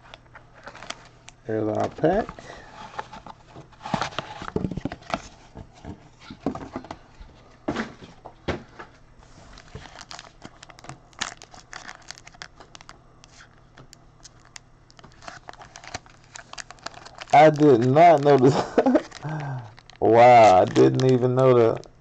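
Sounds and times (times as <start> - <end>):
foil wrapper crinkling and tearing: 0.6 - 1.2, 9.5 - 21.9.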